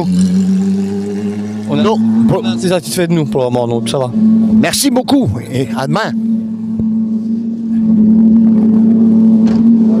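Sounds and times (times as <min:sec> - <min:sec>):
rally car engine running: 0:00.0 - 0:10.0.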